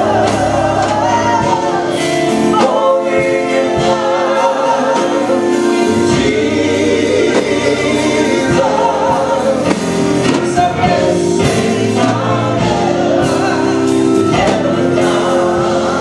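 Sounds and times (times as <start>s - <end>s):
electric keyboard chords: 0.0s - 16.0s
gospel choir singing: 0.0s - 16.0s.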